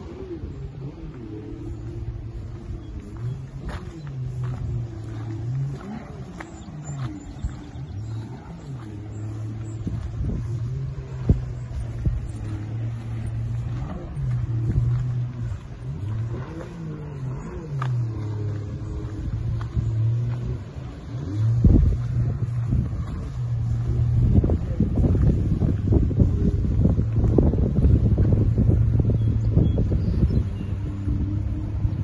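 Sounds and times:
low motor hum: 0:00.0 - 0:32.0
wind buffeting microphone: 0:00.0 - 0:32.0.

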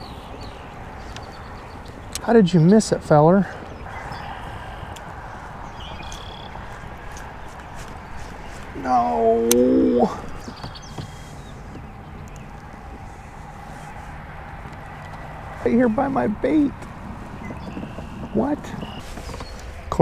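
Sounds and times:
steady outdoor hiss: 0:00.0 - 0:20.0
man groaning: 0:08.8 - 0:10.2.

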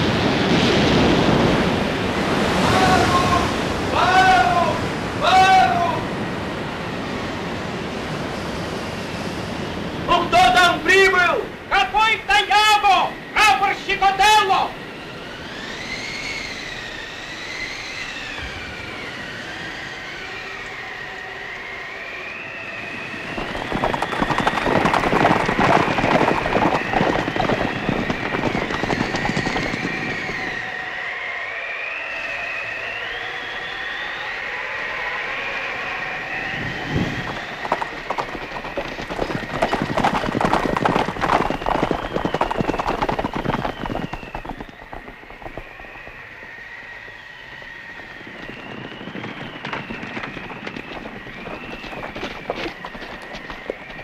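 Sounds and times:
storm wind howling: 0:00.0 - 0:54.0.

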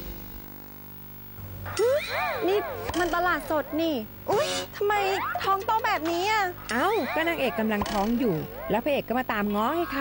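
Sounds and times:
woman speaking: 0:02.4 - 0:10.0.

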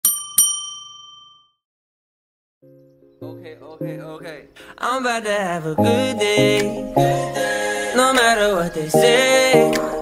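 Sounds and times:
small bell ding: 0:00.0 - 0:01.6.

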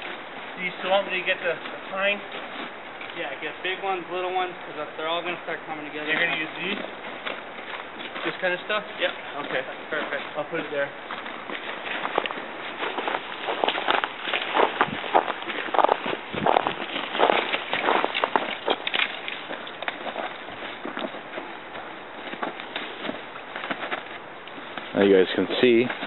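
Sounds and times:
dry branches rustling and snapping: 0:00.0 - 0:03.5, 0:05.8 - 0:26.0
footsteps crunching through snow: 0:00.0 - 0:26.0.

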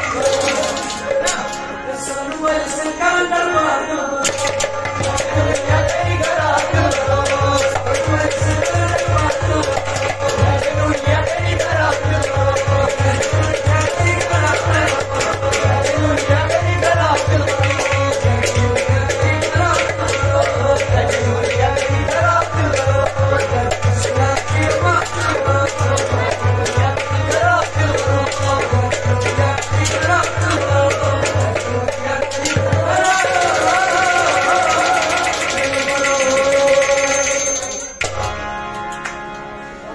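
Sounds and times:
hand percussion beat: 0:00.0 - 0:01.6, 0:04.2 - 0:38.3
man singing into a microphone: 0:00.0 - 0:37.8.

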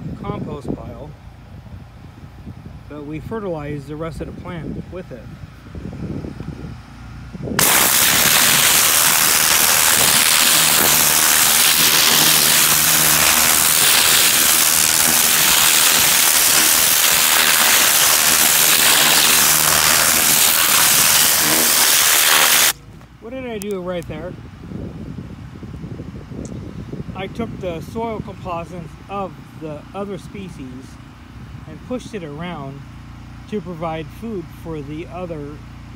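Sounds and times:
low hum: 0:07.2 - 0:23.3
high-pressure water jet hissing: 0:07.6 - 0:22.8.

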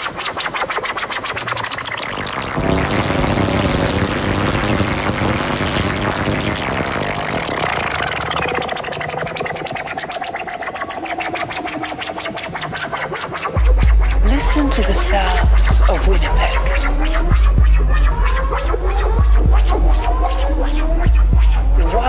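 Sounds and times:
breakcore electronic music: 0:00.0 - 0:22.0
noisy bass-heavy wash: 0:00.9 - 0:22.0
rapid clicking beat: 0:04.7 - 0:22.0.

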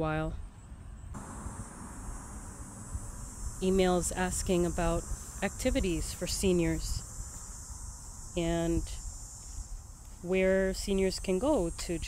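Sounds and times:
crickets trilling: 0:00.9 - 0:12.0.

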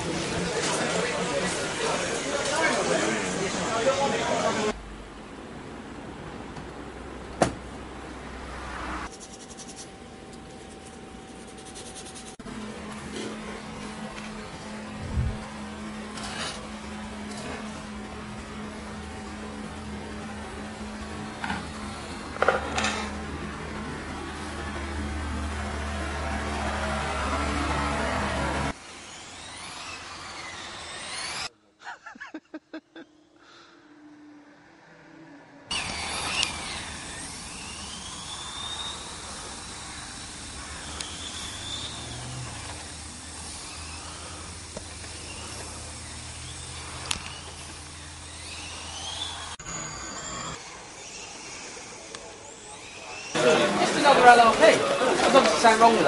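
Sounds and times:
rc car motors whining: 0:00.0 - 0:04.8, 0:08.8 - 0:31.5, 0:33.0 - 0:56.0.

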